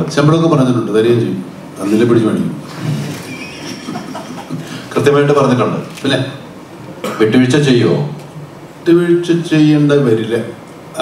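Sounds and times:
people laughing: 2.8s - 4.9s.

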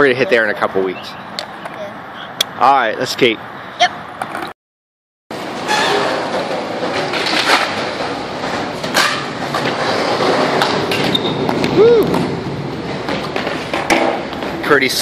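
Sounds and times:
skateboard wheels rolling on concrete: 2.6s - 4.5s, 5.3s - 15.0s
skateboard clacks: 6.1s - 15.0s.

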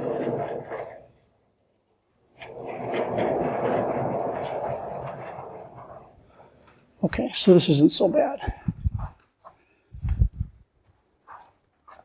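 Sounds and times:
sliding chalkboard panels rumbling: 0.0s - 10.6s.

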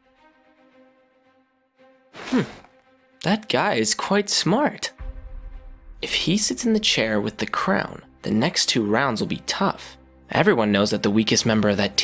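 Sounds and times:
person humming hmm: 2.2s - 2.7s
faint background music: 3.2s - 12.0s.

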